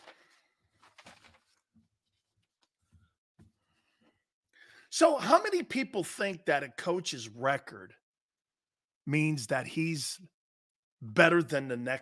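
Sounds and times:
man breathing in: 0:03.7 - 0:04.9
man speaking: 0:04.9 - 0:08.0, 0:09.1 - 0:10.3, 0:11.0 - 0:12.0.

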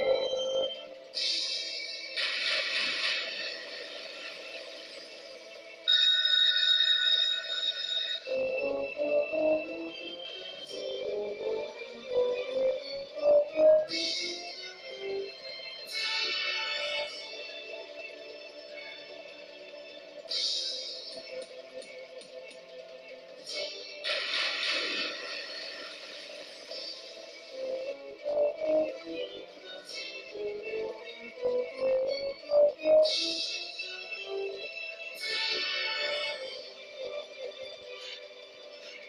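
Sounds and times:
electronic slot machine music: 0:00.0 - 0:02.3, 0:05.8 - 0:21.6, 0:26.7 - 0:37.6
bell-like win chimes: 0:05.9 - 0:09.6.

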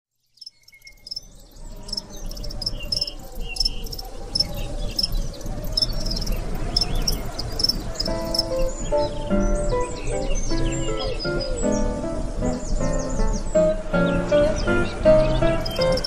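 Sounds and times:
insects chirping: 0:00.2 - 0:11.6, 0:12.2 - 0:16.0.

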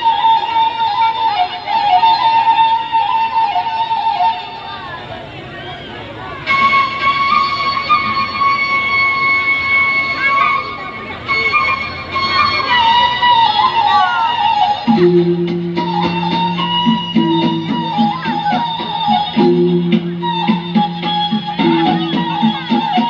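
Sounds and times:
traditional dance music: 0:00.0 - 0:05.4, 0:06.1 - 0:23.0
wavering held melody line: 0:06.5 - 0:23.0.

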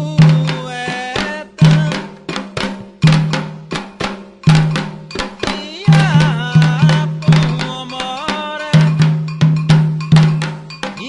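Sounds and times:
hand drums: 0:00.0 - 0:11.0
bright bell struck: 0:06.9 - 0:11.0.

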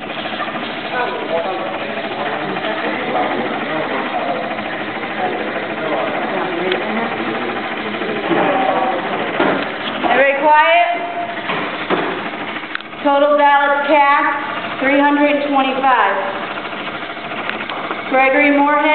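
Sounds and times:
printer printing tape: 0:00.0 - 0:18.9
voices talking: 0:00.0 - 0:18.9.

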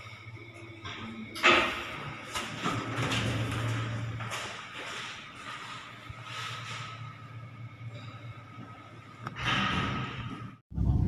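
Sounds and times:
steady low hum: 0:00.0 - 0:11.0
footsteps on tiled floor: 0:02.4 - 0:06.8.

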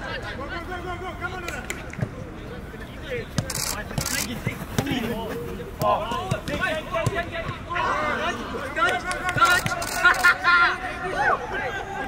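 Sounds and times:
players calling: 0:00.2 - 0:12.0
footballs being kicked: 0:03.3 - 0:07.7.

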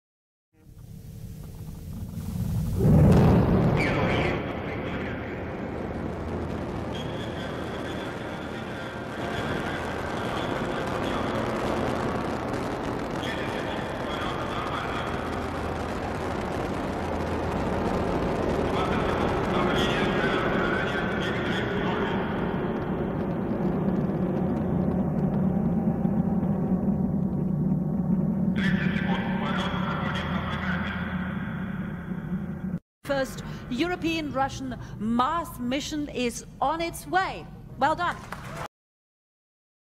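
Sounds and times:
rocket engines rumbling: 0:00.7 - 0:35.4
person speaking: 0:33.1 - 0:38.1.

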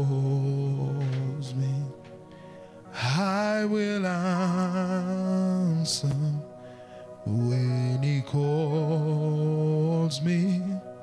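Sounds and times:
soft music: 0:00.0 - 0:11.0.

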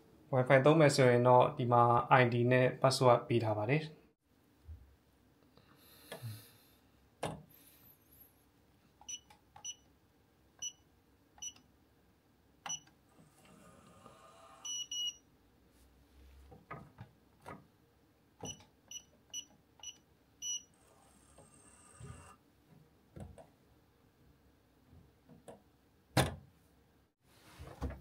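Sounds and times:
keypad beeps: 0:14.7 - 0:15.2, 0:18.4 - 0:20.7.

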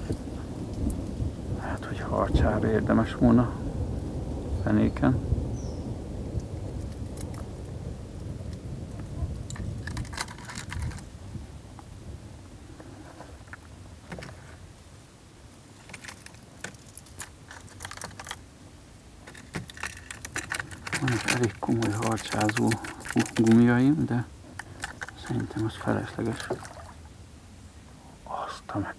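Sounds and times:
fishing tackle clicking and rattling: 0:09.5 - 0:11.1, 0:15.8 - 0:18.4, 0:19.2 - 0:26.8.

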